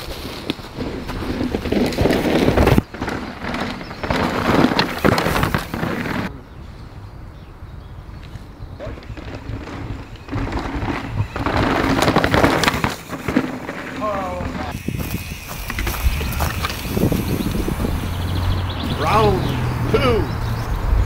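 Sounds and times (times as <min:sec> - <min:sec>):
bike knocking and rattling: 0:00.0 - 0:06.3, 0:08.8 - 0:18.9
bike tyres crunching on dirt: 0:00.0 - 0:06.3, 0:08.1 - 0:21.0.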